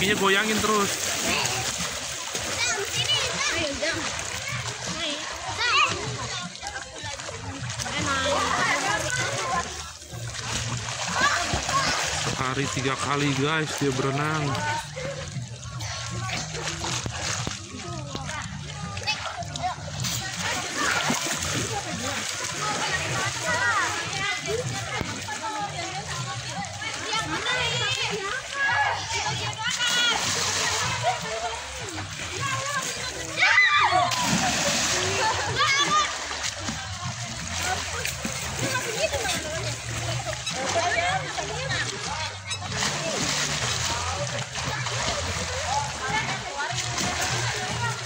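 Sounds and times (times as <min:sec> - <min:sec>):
children calling and chattering: 0:00.0 - 0:48.0
children splashing in pool: 0:00.0 - 0:48.0.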